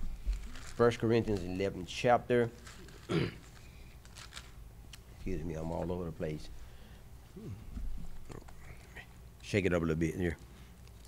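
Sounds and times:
man murmuring: 7.3 - 7.8.

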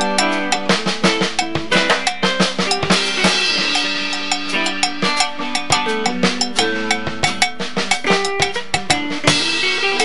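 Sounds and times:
drum kit: 0.0 - 10.0
electric guitar: 0.0 - 10.0
hand percussion: 0.0 - 10.0.

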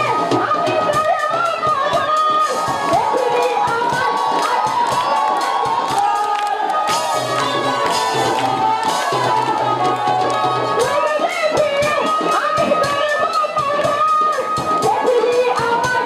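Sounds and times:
crowd cheering and shouting: 0.0 - 16.0.

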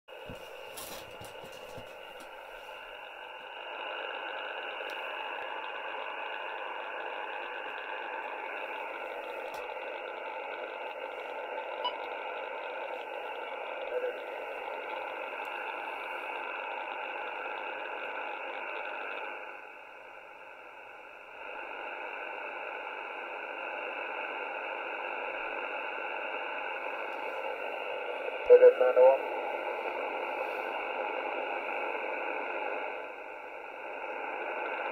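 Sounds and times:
radio static hiss: 0.1 - 34.9.

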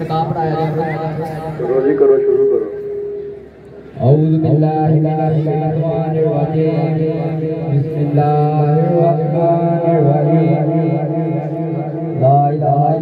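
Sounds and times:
man chanting through loudspeaker: 0.0 - 3.2, 4.0 - 13.0.

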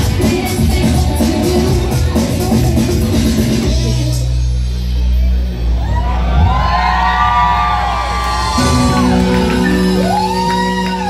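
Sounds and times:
live rock band playing: 0.0 - 4.4, 8.4 - 11.0
crowd shouting: 5.8 - 11.0
sliding high guitar notes: 8.5 - 11.0.

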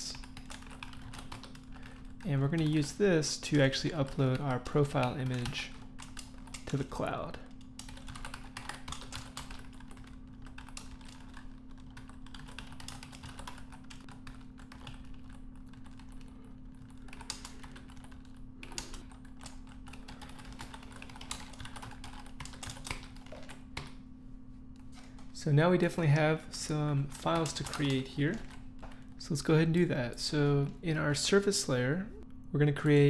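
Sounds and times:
steady low hum: 0.0 - 33.0
typing on computer keyboard: 0.1 - 2.0, 7.8 - 16.3, 17.0 - 24.0.

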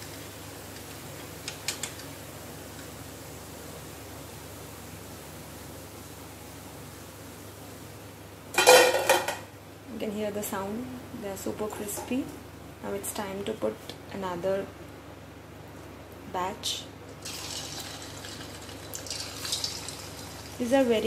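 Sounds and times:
crisp fritters rattling on metal skimmer: 17.2 - 20.6.

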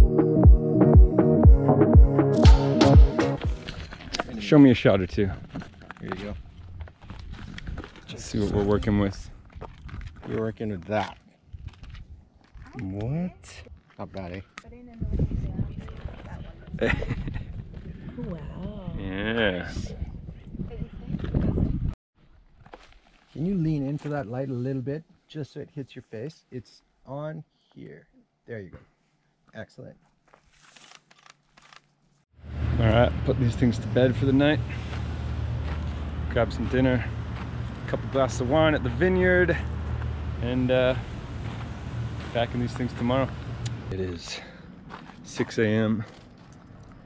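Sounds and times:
footsteps on dirt and gravel: 3.4 - 16.8, 22.4 - 24.2, 34.6 - 47.0.

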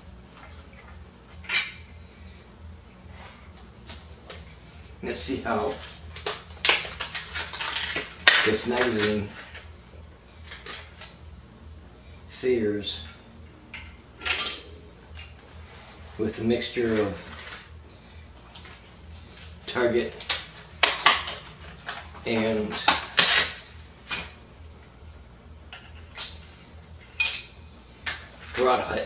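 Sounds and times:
packaging crinkling and scraping: 5.8 - 9.6.

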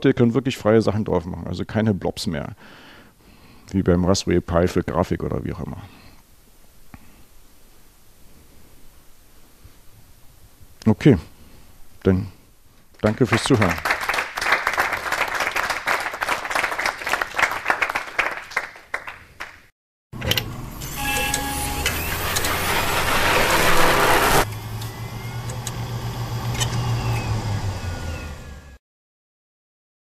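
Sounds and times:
audience applauding: 13.0 - 19.7
electronic outro rush with tones: 20.7 - 28.4.

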